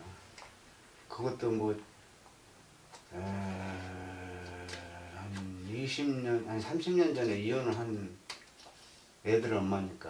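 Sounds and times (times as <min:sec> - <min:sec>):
man saying eh: 0:03.1 - 0:06.7.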